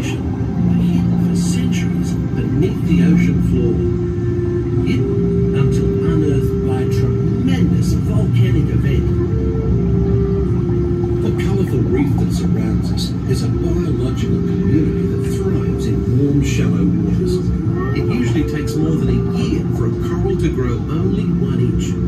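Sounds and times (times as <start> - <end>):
slow background music: 0.0 - 22.0
steady low rumble: 0.0 - 22.0.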